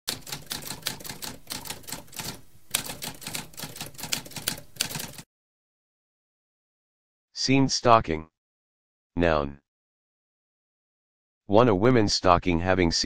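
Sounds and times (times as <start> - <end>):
typewriter key strikes: 0.1 - 5.2.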